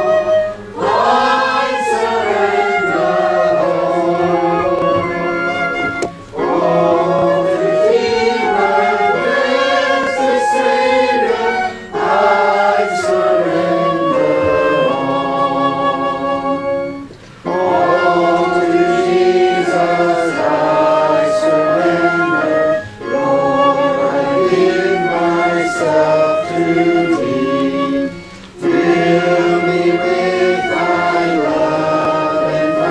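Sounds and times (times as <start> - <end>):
congregation singing a hymn: 0.0 - 32.9.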